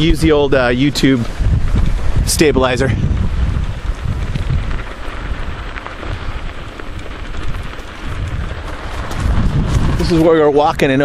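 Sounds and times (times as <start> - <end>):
wind rushing over microphone: 0.0 - 11.0.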